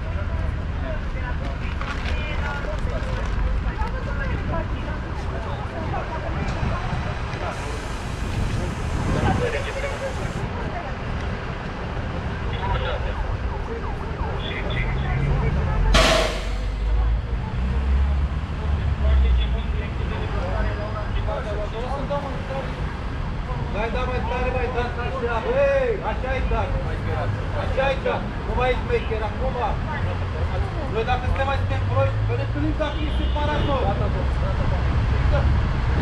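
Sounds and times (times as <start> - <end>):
voices talking: 0.0 - 35.5
street traffic rumble: 0.0 - 36.0
bus engine running: 5.2 - 10.7
short sharp hiss: 16.0 - 16.9.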